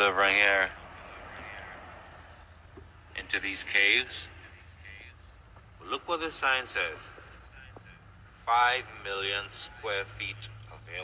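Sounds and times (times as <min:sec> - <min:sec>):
truck driving slowly: 0:00.0 - 0:11.0.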